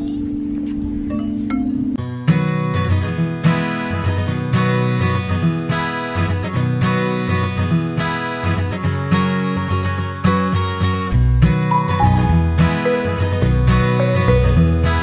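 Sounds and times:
background music with guitar: 0.0s - 15.0s.

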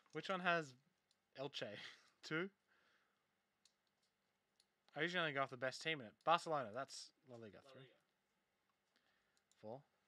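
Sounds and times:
computer mouse clicks: 3.6s - 5.0s, 8.9s - 9.7s.

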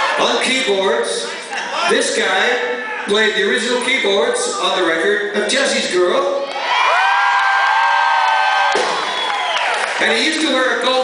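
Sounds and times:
crowd cheering: 0.0s - 0.5s, 6.4s - 11.0s.

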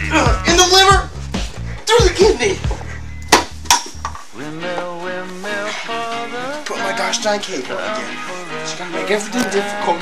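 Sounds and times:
background music: 0.0s - 10.0s
sharp metallic clanks: 3.3s - 4.3s.

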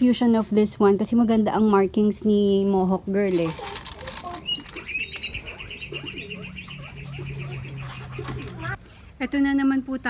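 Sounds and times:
bird trilling: 4.4s - 8.8s.

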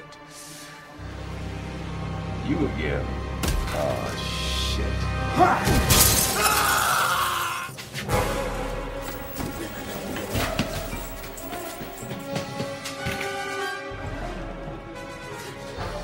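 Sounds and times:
film score music: 0.0s - 16.0s
glass shattering: 5.6s - 7.0s.

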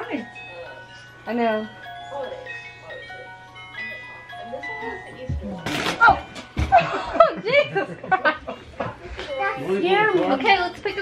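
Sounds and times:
music box plinking: 0.0s - 7.0s.

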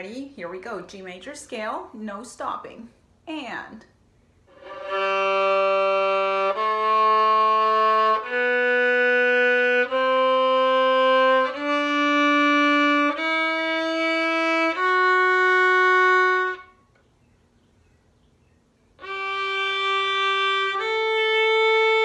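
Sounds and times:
violin playing slow scale: 4.5s - 16.8s, 19.0s - 22.0s.

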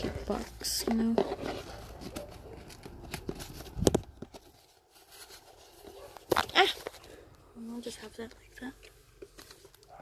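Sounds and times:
cardboard boxes and papers rustling: 0.0s - 10.0s.

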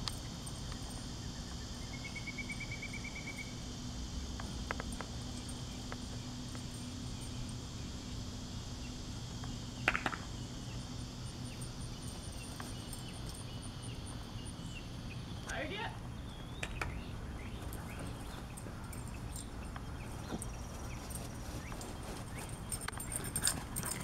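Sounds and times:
insects droning: 0.0s - 24.0s.

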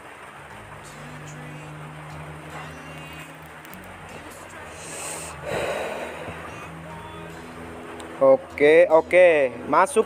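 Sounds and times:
person exhaling: 4.7s - 6.7s.

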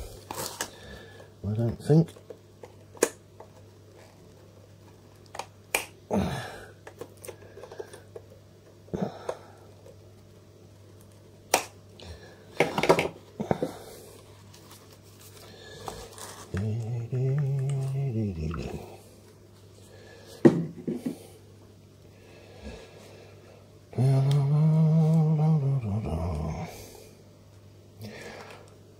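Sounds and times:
faint low hum: 0.0s - 28.9s
low voice-like sound: 16.5s - 19.1s, 23.9s - 26.8s.

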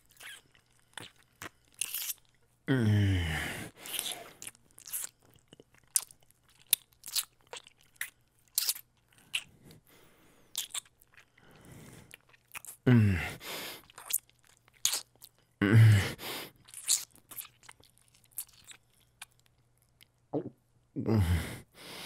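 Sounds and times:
wet kissing and licking sounds: 1.0s - 2.2s, 3.8s - 5.2s, 5.9s - 9.5s, 10.6s - 10.9s, 13.9s - 15.1s, 16.7s - 17.7s
breath: 9.2s - 10.6s, 11.3s - 12.2s, 13.0s - 13.9s, 21.1s - 22.0s.

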